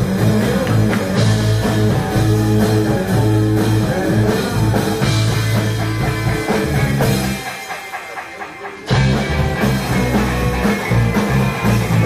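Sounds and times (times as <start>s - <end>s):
drum kit: 0.0s - 12.0s.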